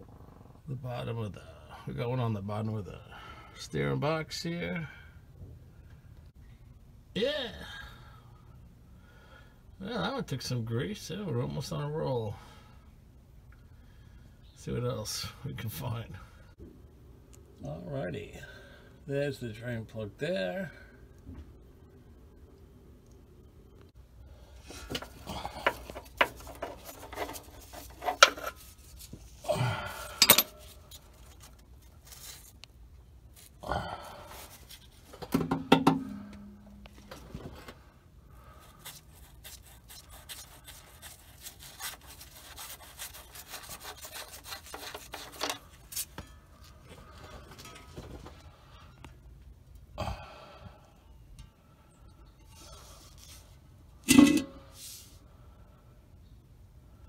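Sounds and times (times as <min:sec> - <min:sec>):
metal clank: 0:30.2 - 0:30.6, 0:35.3 - 0:37.2, 0:54.0 - 0:54.7.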